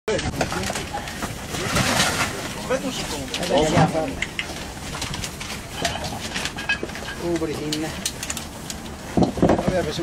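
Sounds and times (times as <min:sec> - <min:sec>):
people talking: 0:00.1 - 0:04.3, 0:07.2 - 0:08.0, 0:09.4 - 0:10.0
background noise: 0:00.1 - 0:10.0.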